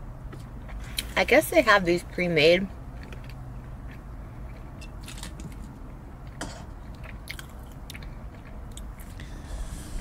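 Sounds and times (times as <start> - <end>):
person chewing food: 2.9 - 10.0.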